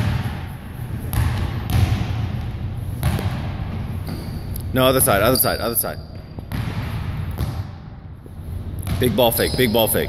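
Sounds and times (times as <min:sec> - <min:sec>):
basketball bouncing on hardwood floor: 0:01.1 - 0:04.3, 0:06.4 - 0:07.7, 0:08.8 - 0:09.6.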